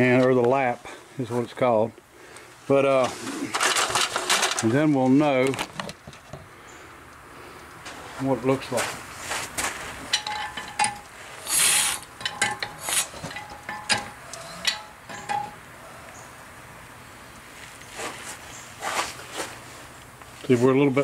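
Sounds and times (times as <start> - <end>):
metal clicks and clanks: 10.1 - 15.6.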